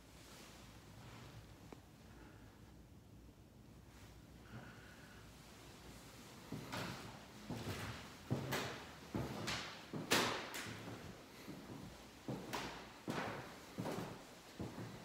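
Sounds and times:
footsteps on hardwood floor: 6.4 - 15.0.

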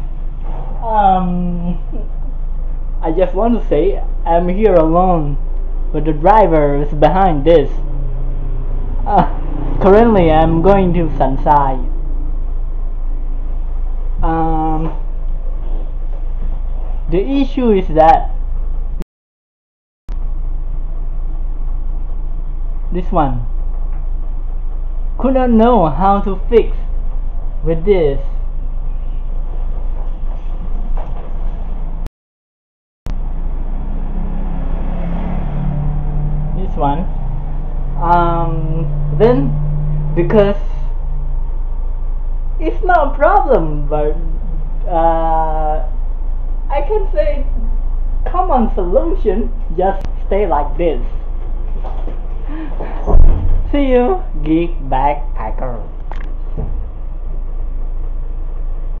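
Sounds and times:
truck engine and road rumble: 0.0 - 19.0, 20.1 - 32.1, 33.1 - 59.0.

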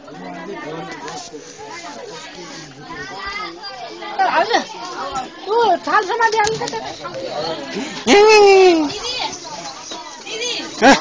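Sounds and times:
people chattering and calling out: 0.0 - 11.0.

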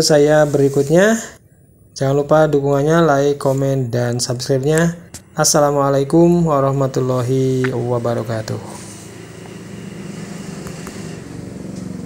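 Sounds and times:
engine running: 6.8 - 12.0.

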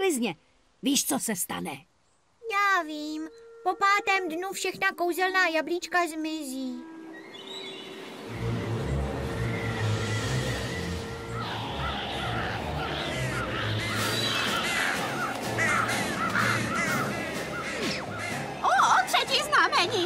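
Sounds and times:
music with low pulsing beat: 8.3 - 20.0
crows cawing: 11.2 - 19.8.

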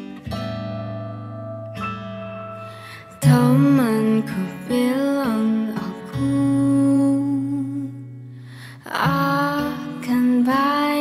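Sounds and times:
woman singing pop song: 2.6 - 11.0.

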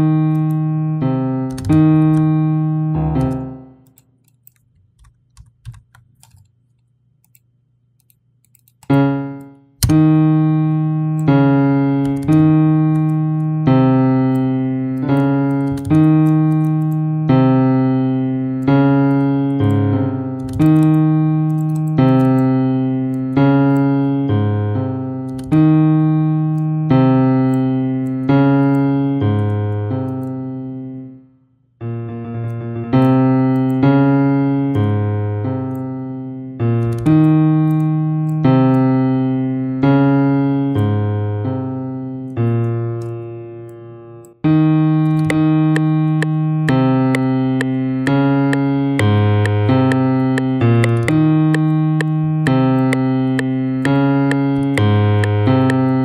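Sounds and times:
piano playing single notes: 0.0 - 4.0, 31.8 - 56.0.

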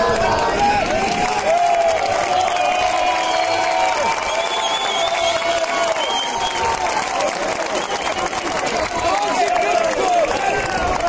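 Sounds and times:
crowd clapping and shouting: 0.0 - 11.0.

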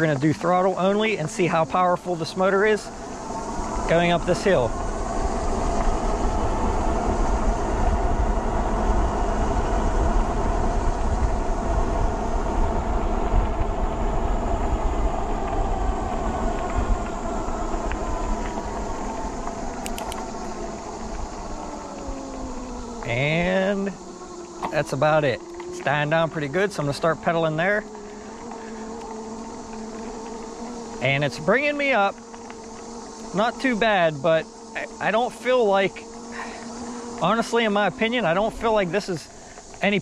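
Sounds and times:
wind rumble on microphone: 0.0 - 32.2
electric motor whining: 0.0 - 40.0
tyre noise: 0.0 - 40.0.

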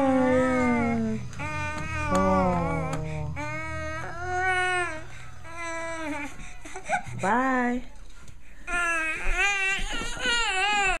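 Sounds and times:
baby whining: 0.0 - 7.1, 8.7 - 11.0.

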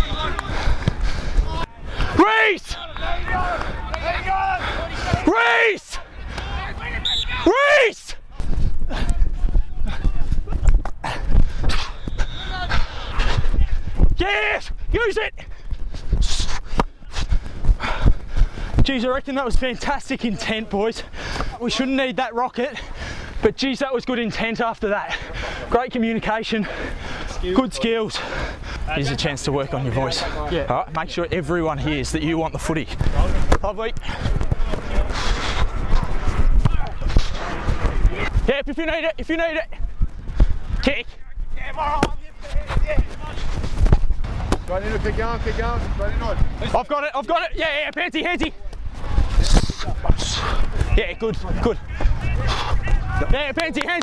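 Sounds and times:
footsteps running on grass: 32.5 - 54.0.

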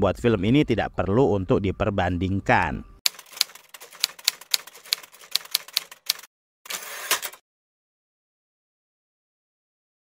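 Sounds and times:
typewriter keys clacking: 3.1 - 7.4.

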